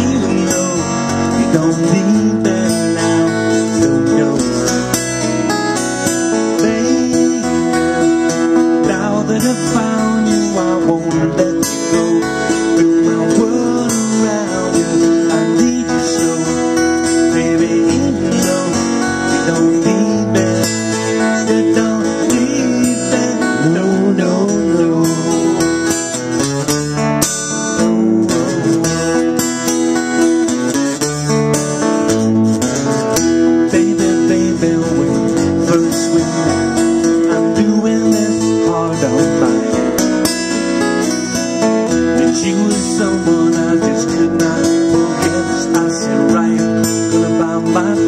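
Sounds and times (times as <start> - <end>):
strummed acoustic guitars: 0.0 - 48.0.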